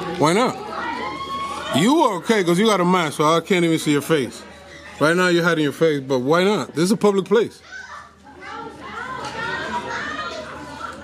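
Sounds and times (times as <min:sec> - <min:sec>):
children chattering and playing: 0:00.0 - 0:11.0.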